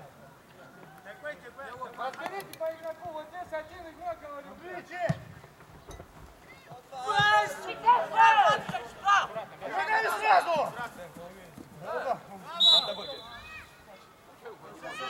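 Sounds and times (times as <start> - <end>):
footballers shouting: 6.6 - 11.2, 14.7 - 15.0.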